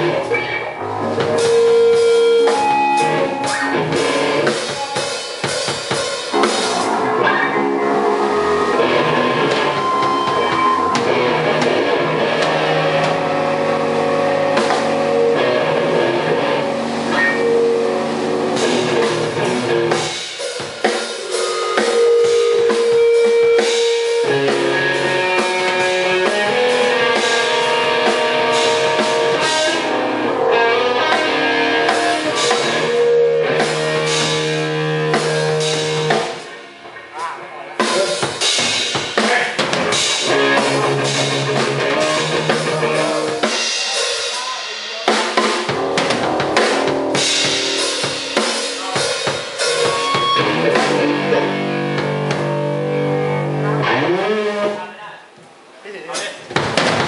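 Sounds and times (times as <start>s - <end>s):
drum kit: 0.0s - 54.4s, 56.1s - 57.0s
loud live rock band: 0.0s - 54.8s
electric guitar: 0.0s - 54.9s.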